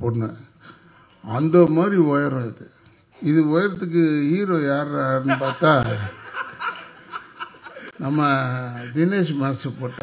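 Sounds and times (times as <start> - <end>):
people laughing and chuckling: 5.0 - 9.1.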